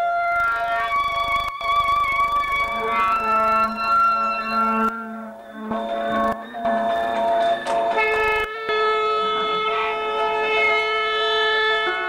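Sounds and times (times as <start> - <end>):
wind instrument held notes: 0.0 - 12.0.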